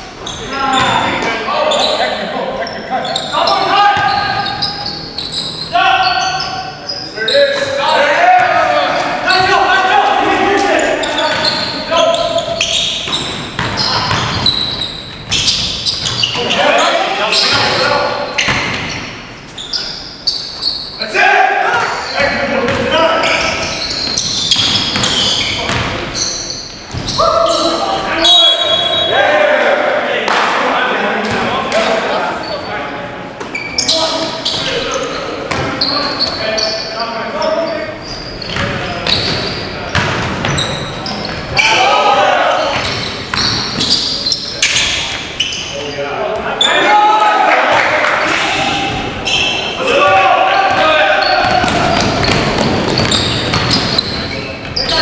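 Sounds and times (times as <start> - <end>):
players shouting: 3.0 - 12.6, 27.1 - 32.5, 41.5 - 44.0, 45.8 - 54.1.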